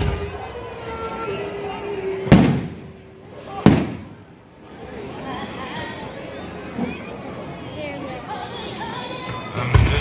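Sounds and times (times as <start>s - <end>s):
fireworks booming: 2.3s - 3.0s, 3.6s - 4.4s.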